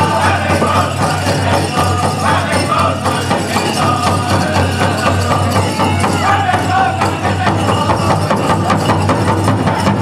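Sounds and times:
big drum fast steady beat: 0.0 - 10.0
men singing: 0.0 - 10.0.

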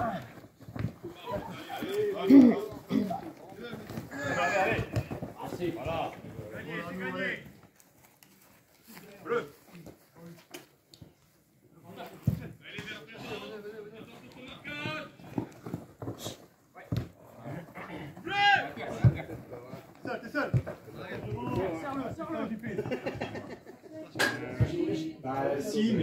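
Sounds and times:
footballers shouting: 1.0 - 7.4, 12.6 - 15.4, 17.6 - 23.2.

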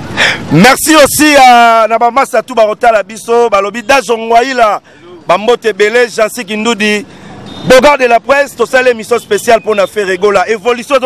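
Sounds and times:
street traffic: 0.0 - 11.0
man speaking into a microphone: 0.3 - 11.0.

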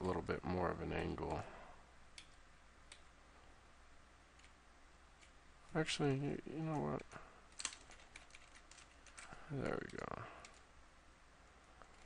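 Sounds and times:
computer mouse clicking: 2.2 - 3.1, 4.4 - 4.6.

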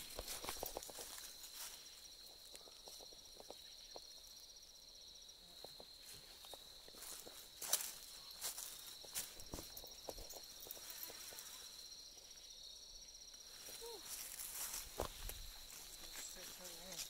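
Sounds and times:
footsteps crunching dry leaves: 0.0 - 3.2, 6.1 - 11.8, 13.6 - 17.0
insects trilling: 0.0 - 17.0.

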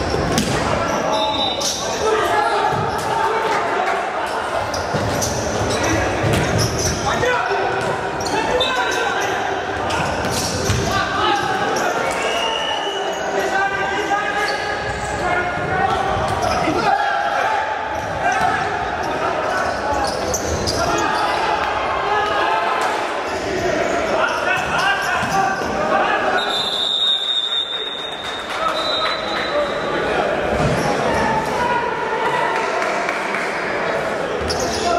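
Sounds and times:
players shouting: 5.7 - 27.2
long high whistle: 26.4 - 28.1.

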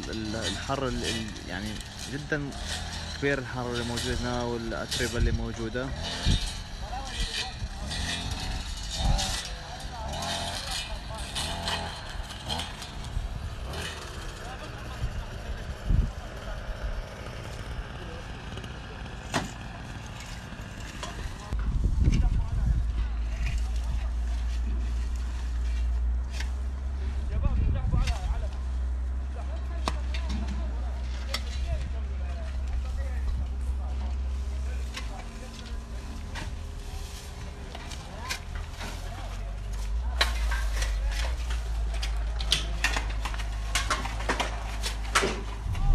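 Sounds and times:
rakes and shovels scraping ground: 0.0 - 45.9
steady low rumble: 21.2 - 29.5.

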